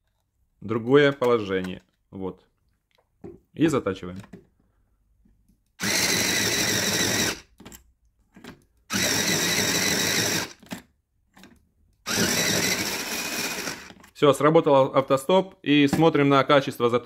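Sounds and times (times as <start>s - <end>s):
electric pencil sharpener grinding: 5.8s - 7.5s, 8.9s - 10.6s, 12.1s - 14.0s.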